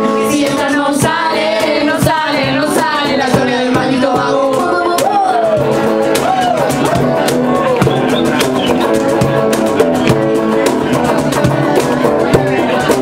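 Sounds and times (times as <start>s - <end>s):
electric guitar playing: 0.0s - 13.0s.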